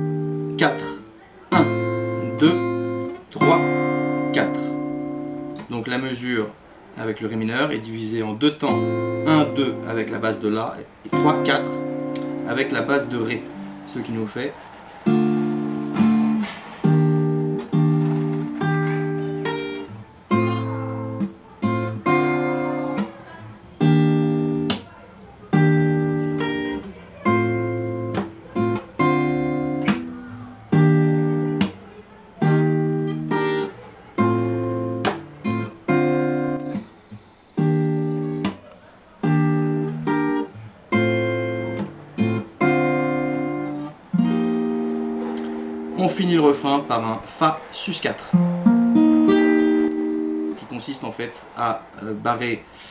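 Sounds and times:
fingerstyle acoustic guitar chords: 0.0s - 52.0s.

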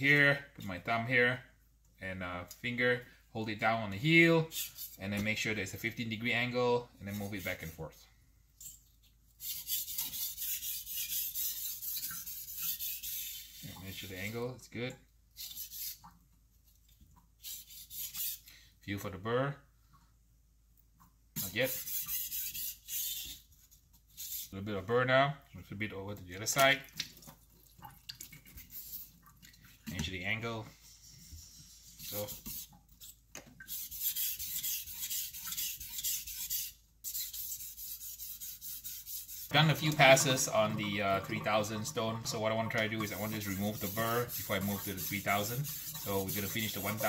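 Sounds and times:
knife rasping on whetstone: 4.5s - 5.0s, 9.4s - 13.8s, 17.4s - 18.5s, 21.4s - 23.5s, 30.8s - 40.4s, 43.0s - 47.0s.

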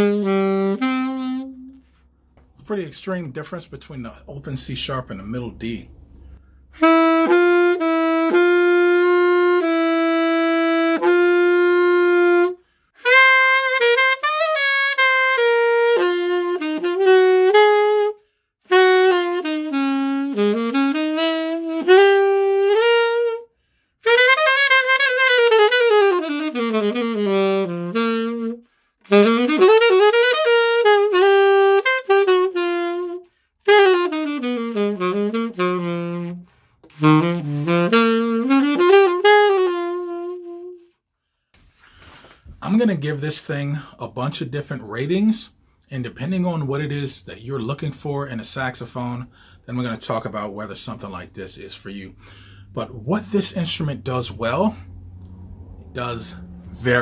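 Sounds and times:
solo alto saxophone: 0.0s - 2.2s, 6.3s - 42.5s, 46.2s - 57.0s
player breathing: 6.1s - 6.8s, 41.1s - 42.5s, 49.3s - 49.6s, 52.2s - 52.7s.

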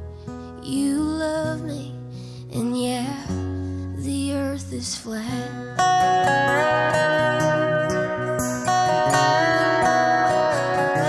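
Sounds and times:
acoustic guitar strumming: 0.0s - 11.0s
slide dobro: 5.3s - 11.0s.

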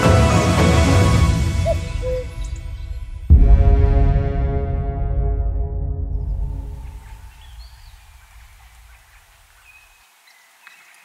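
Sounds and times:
music: 0.0s - 7.4s
faint bird chirps: 1.6s - 2.9s.

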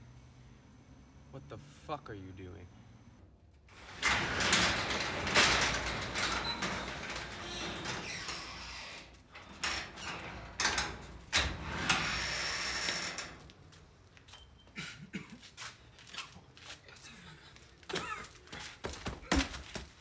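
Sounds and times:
garage door rattling on tracks: 3.7s - 13.7s.

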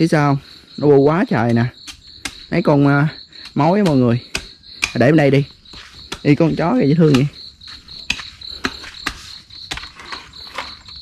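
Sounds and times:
crickets chirping: 0.0s - 11.0s
knife chopping coconut: 3.4s - 5.1s.

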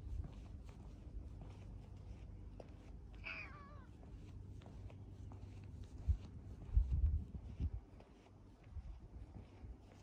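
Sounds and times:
cat meowing: 3.2s - 3.9s.

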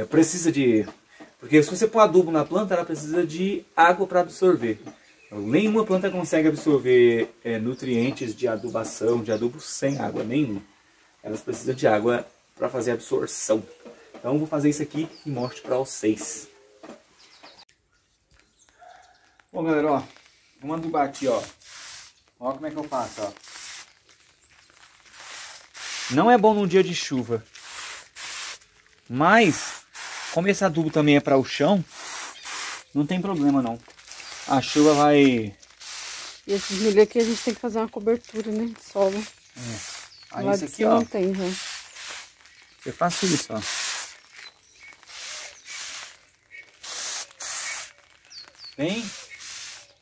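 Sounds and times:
hiss of sprayer: 21.1s - 22.2s, 22.9s - 23.9s, 25.1s - 26.2s, 27.6s - 28.6s, 29.5s - 30.5s, 31.9s - 32.9s, 34.2s - 35.1s, 35.8s - 37.6s, 39.1s - 40.2s, 41.4s - 42.4s, 43.1s - 44.2s, 45.1s - 46.2s, 46.8s - 47.9s, 48.9s - 50.0s.

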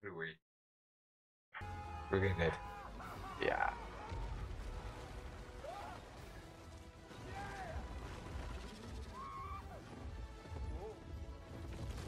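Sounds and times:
film music: 1.6s - 12.0s.

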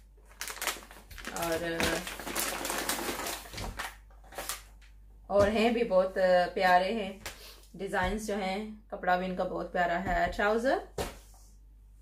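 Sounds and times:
plastic packet crinkling: 0.2s - 4.9s.

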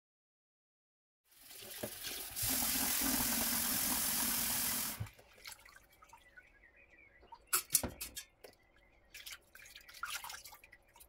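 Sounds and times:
tap water running into a bowl: 1.3s - 5.1s
water dripping and splashing: 1.3s - 11.0s.

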